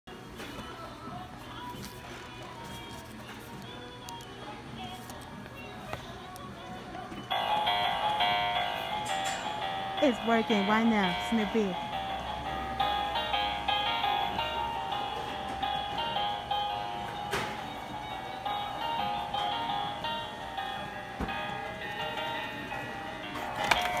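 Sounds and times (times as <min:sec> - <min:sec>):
toy playing electronic melody: 0:07.3 - 0:24.0.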